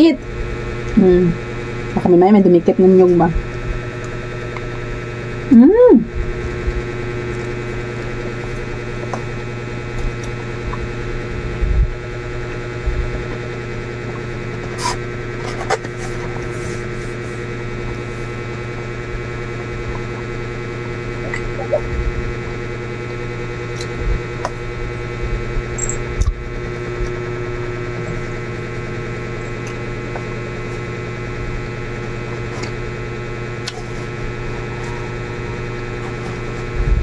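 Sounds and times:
steady electrical hum: 0.0s - 37.0s.

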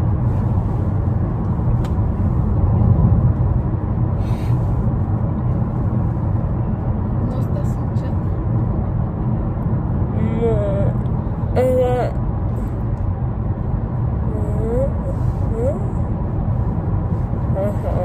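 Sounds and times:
road rumble inside car: 0.0s - 18.0s
person speaking: 14.3s - 16.0s, 17.6s - 18.0s.

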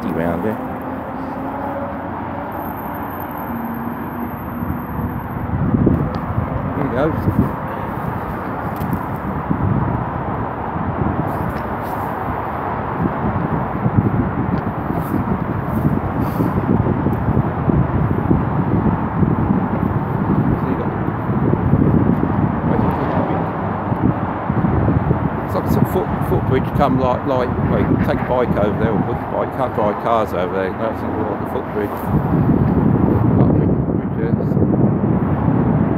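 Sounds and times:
wind buffeting microphone: 0.0s - 35.9s.

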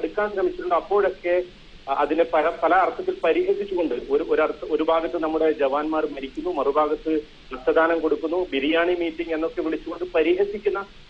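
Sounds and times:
person talking: 0.0s - 10.8s.

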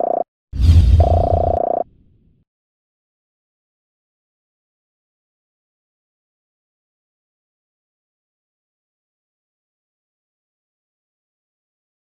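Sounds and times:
buzzy synthesized tone: 1.0s - 1.8s.

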